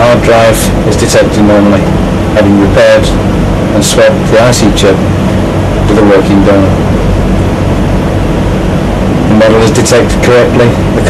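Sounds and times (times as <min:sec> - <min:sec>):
low hum: 0:00.0 - 0:11.0
steady loud hiss: 0:00.0 - 0:11.0.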